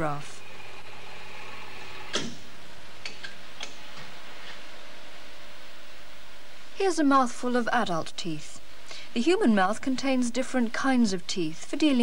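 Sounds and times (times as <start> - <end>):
x-ray machine humming: 0.0 - 12.0.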